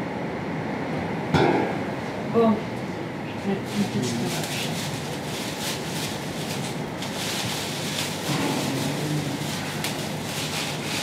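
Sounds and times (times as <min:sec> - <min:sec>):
plastic sleeves crinkling: 0:03.6 - 0:11.0.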